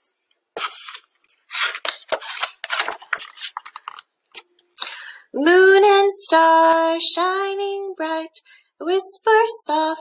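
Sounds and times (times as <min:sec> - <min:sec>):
paper pages rustling: 0:00.6 - 0:04.5.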